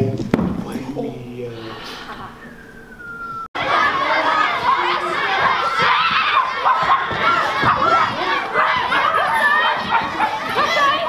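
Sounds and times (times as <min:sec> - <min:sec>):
children shouting and cheering: 0:03.3 - 0:11.0.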